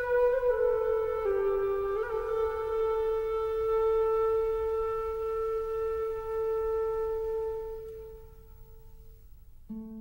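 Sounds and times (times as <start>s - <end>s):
solo wind instrument melody: 0.0s - 10.0s.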